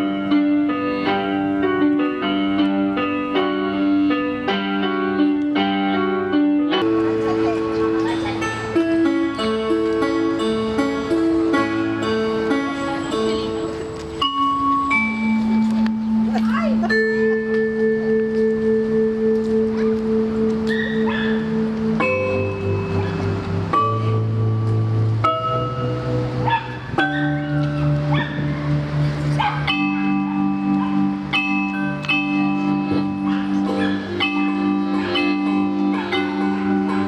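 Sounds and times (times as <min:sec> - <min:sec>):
accordion and keyboard music: 0:00.0 - 0:37.0
bell-like notes: 0:06.8 - 0:37.0.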